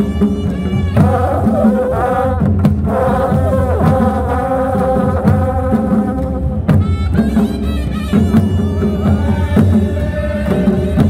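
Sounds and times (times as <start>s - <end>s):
drum beats: 0.0s - 11.0s
wind instruments melody: 0.0s - 11.0s.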